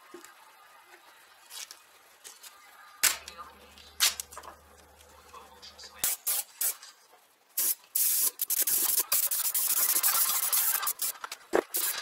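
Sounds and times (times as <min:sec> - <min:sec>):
airbrush spraying hiss: 0:06.0 - 0:06.8, 0:07.6 - 0:12.0.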